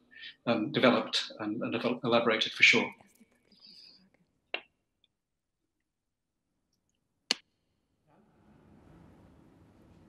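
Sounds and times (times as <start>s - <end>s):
faint breathy sound: 0.0s - 0.5s.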